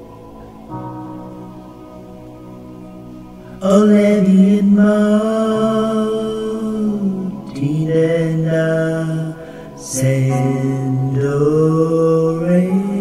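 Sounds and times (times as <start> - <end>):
slow sung melody: 0.0 - 13.0.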